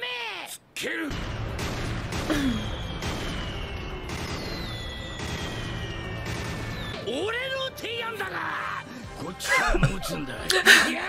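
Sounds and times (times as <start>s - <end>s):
rumble of cannon fire and explosions: 1.1s - 7.1s
falling whistling tones: 2.5s - 7.1s.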